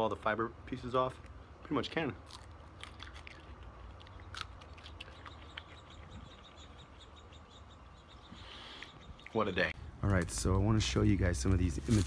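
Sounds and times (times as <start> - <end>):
crunching chewing: 1.1 - 7.2.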